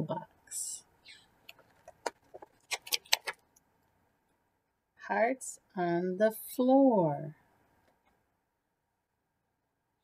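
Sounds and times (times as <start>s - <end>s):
book page turning: 1.5s - 3.4s.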